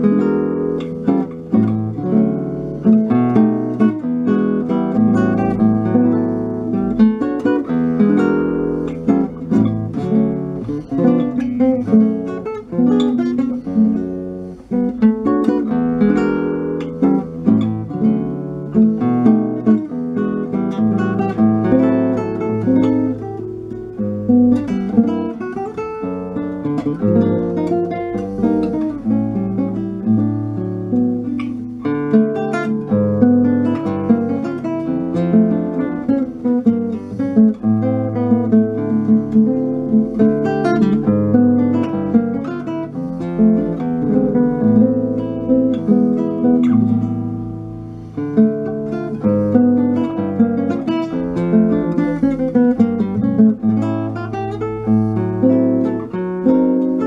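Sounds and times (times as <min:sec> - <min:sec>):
classical guitar playing: 0:00.0 - 0:57.0.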